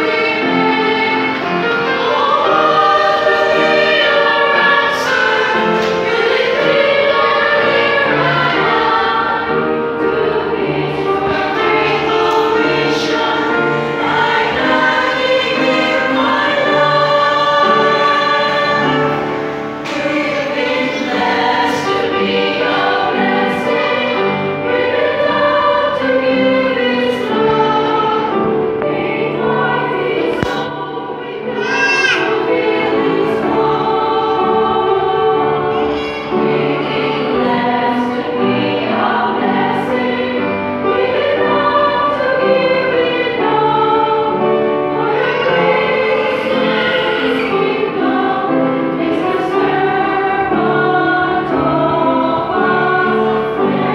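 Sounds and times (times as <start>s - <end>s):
women's choir singing: 0.0s - 53.9s.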